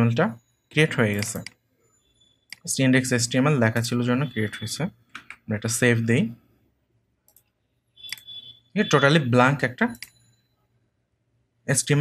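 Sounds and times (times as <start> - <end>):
person speaking: 0.0 - 1.5, 2.6 - 6.4, 8.8 - 10.1
computer mouse click: 2.5 - 2.7, 7.3 - 8.4.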